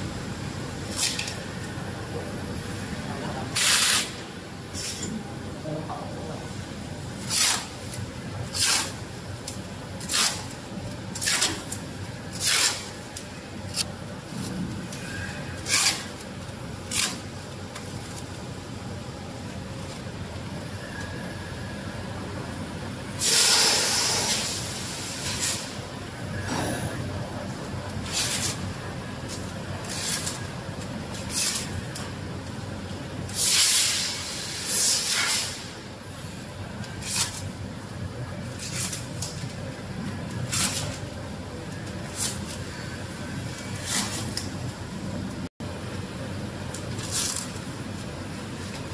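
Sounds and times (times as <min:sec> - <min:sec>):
compressed air hissing: 0:23.2 - 0:25.7, 0:33.4 - 0:35.7
low machine hum: 0:25.7 - 0:33.3.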